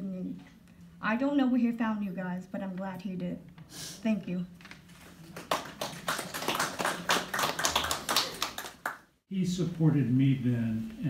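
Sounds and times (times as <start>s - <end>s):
audience applause: 5.2s - 9.0s.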